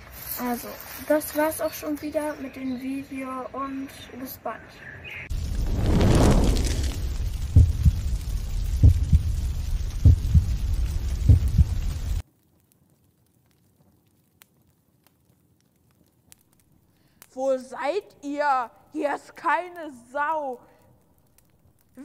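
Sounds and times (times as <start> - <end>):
falling whoosh: 5.3 - 9.0
deep thuds: 5.4 - 11.9.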